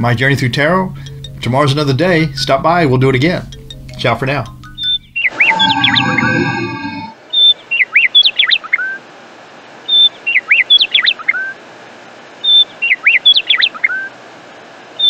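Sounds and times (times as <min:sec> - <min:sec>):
bird chirps and whistles: 0:04.8 - 0:09.0
faint steady hiss: 0:07.1 - 0:15.0.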